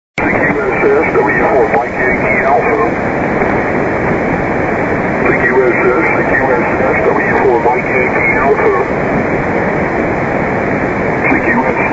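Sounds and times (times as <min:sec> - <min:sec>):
radio voice: 0:00.2 - 0:03.0, 0:05.2 - 0:09.0, 0:11.1 - 0:11.9
static hiss: 0:00.2 - 0:11.9.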